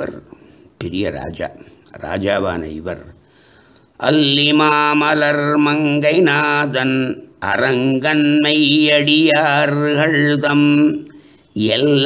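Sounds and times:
man chanting verses: 0.0s - 3.2s, 4.0s - 12.0s.

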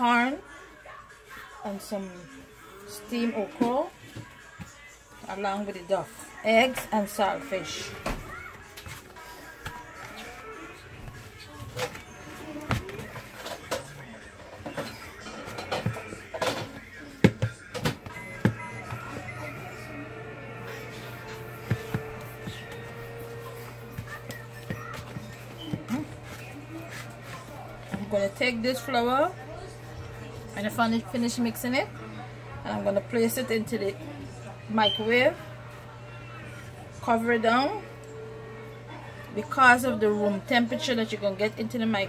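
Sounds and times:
faint background music: 0.0s - 42.0s
dough kneaded in a bowl: 20.6s - 31.8s.

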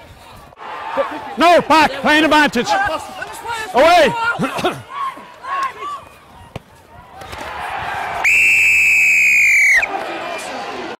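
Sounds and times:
referee's whistle blast: 8.3s - 9.9s.

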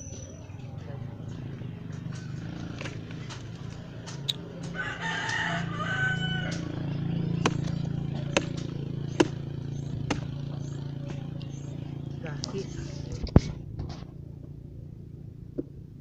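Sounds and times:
rooster crowing: 4.7s - 6.7s
machete chopping trunk: 7.4s - 10.4s.

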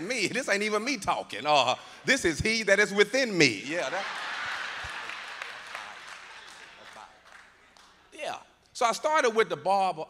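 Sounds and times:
audience applause: 3.8s - 7.8s.

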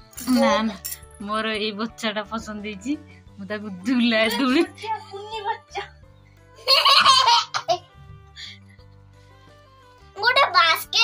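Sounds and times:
soft background music: 0.0s - 11.0s
young child laughing: 6.6s - 7.8s.

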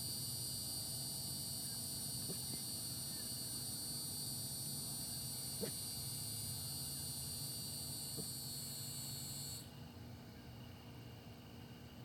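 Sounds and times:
cicadas buzzing: 0.0s - 9.8s
faint insect buzz: 0.0s - 9.8s.

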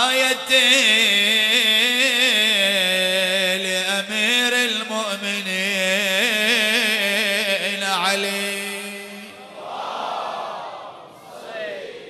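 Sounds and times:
man chanting into a microphone: 0.0s - 9.5s
crowd calling out together: 9.4s - 12.0s.

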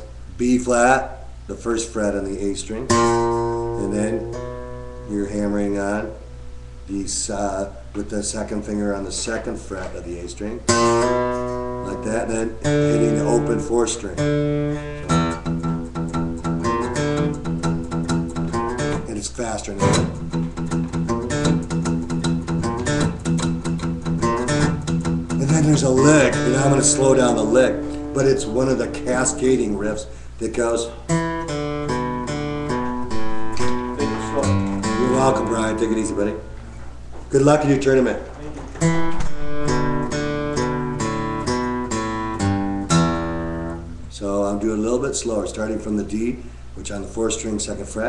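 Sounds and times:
acoustic guitar riff: 2.8s - 6.8s, 10.6s - 44.2s.

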